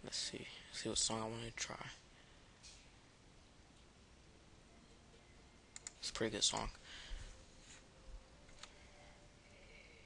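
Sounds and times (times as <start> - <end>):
faint room hiss: 0.0 - 10.0
computer mouse clicks: 5.7 - 6.8, 8.5 - 8.8.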